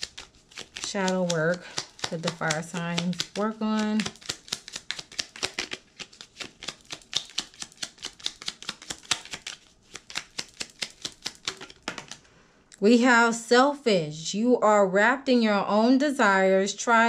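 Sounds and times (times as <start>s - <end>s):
cards being shuffled by hand: 0.0s - 12.3s.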